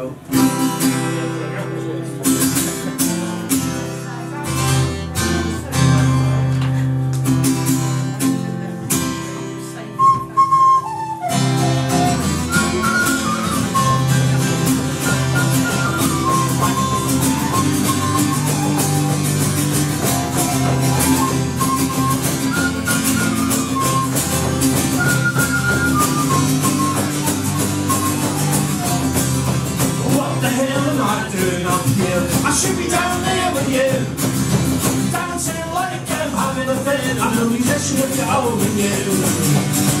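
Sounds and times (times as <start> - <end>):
double bass: 0.0 - 40.0
electric guitar: 0.0 - 40.0
live folk-punk band playing: 0.0 - 40.0
strummed acoustic guitar: 0.0 - 40.0
high melody line: 10.0 - 32.1.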